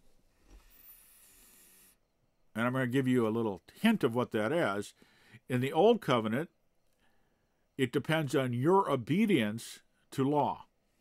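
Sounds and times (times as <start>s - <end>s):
man breathing through nose: 0.6s - 2.0s.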